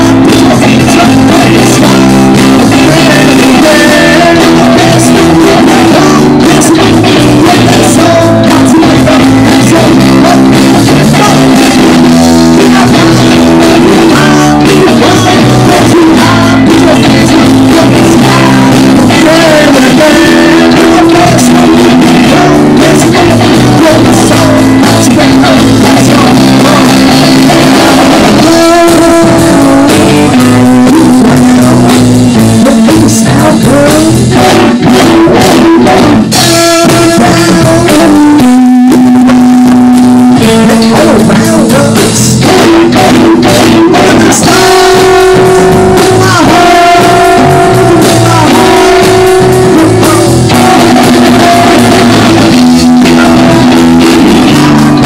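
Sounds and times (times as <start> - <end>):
bass guitar: 0.0 - 55.0
drum kit: 0.0 - 55.0
electric guitar: 0.0 - 55.0
person singing into microphone: 0.0 - 55.0.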